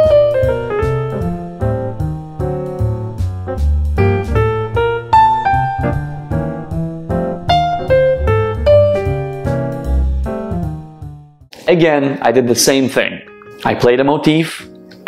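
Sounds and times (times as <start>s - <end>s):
jazz piano melody: 0.0s - 11.5s
low bass line: 0.0s - 11.5s.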